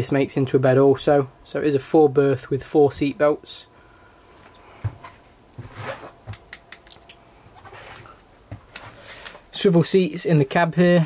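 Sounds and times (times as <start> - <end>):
faint footsteps: 4.3 - 9.5.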